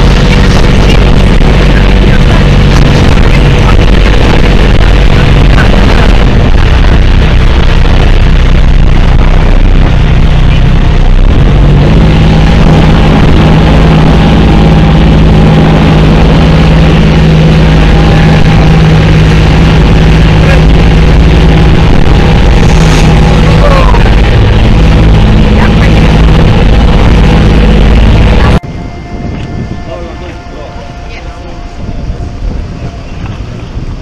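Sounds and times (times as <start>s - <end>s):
hum of boat engines: 0.0s - 34.0s
outboard motor running: 0.0s - 34.0s
rushing water: 0.0s - 34.0s
wind: 0.0s - 34.0s.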